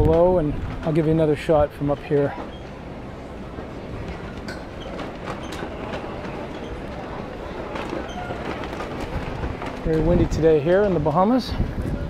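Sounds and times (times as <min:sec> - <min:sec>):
wind buffeting microphone: 0:00.0 - 0:01.8, 0:03.8 - 0:12.0.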